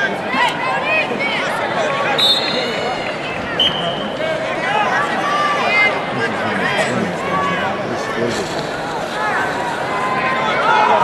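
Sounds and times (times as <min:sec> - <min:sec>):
crowd din: 0:00.0 - 0:11.0
spectators shouting: 0:07.2 - 0:11.0.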